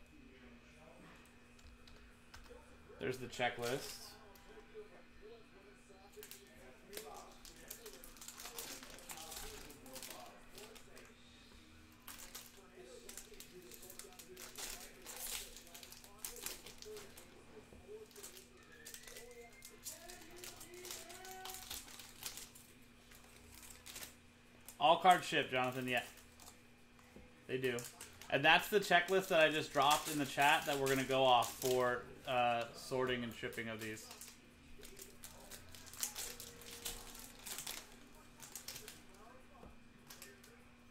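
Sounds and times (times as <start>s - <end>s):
faint low hum: 0.0s - 40.9s
foil wrappers crinkling and tearing: 1.8s - 4.6s, 5.2s - 11.2s, 11.9s - 26.6s, 27.5s - 40.6s.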